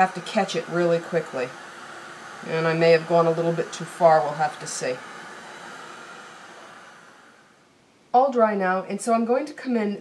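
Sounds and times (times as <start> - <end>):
heat gun blowing hiss: 0.0 - 7.7.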